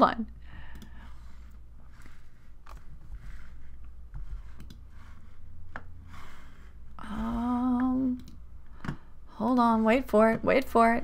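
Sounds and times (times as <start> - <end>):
low steady hum: 0.0 - 11.0
computer mouse clicks: 0.6 - 1.0, 4.5 - 4.8, 8.1 - 9.0.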